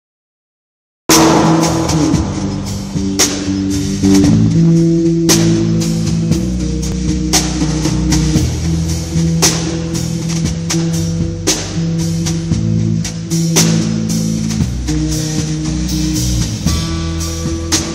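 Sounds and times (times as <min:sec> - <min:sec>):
drum and cymbal hits: 0:01.1 - 0:17.9.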